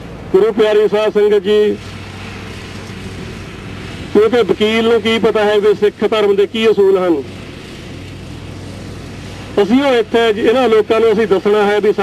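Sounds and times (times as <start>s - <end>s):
constant low hum: 0.0s - 12.0s
even hiss: 0.0s - 12.0s.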